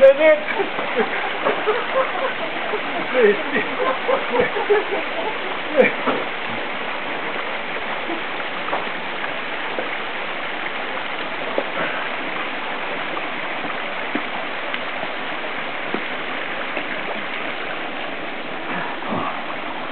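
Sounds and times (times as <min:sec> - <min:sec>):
creek rushing: 0:00.0 - 0:19.9.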